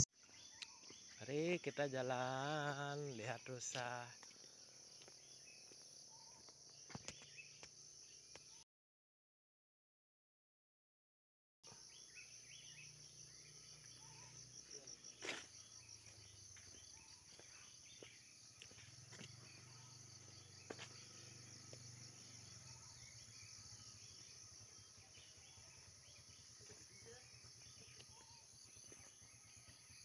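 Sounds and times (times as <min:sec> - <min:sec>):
insect chorus trilling: 0:00.5 - 0:08.4, 0:11.7 - 0:30.0.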